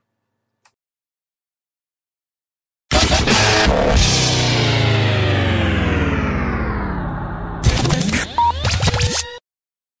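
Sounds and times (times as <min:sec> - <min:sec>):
dj scratch sounds: 0:02.9 - 0:04.0, 0:07.6 - 0:09.4
electronic music sting: 0:02.9 - 0:09.4
brief beeping tones: 0:08.2 - 0:08.7.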